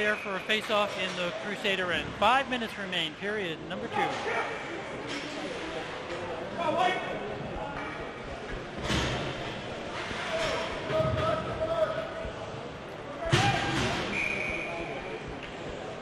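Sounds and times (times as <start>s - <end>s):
voices echoing in arena: 0.0s - 16.0s.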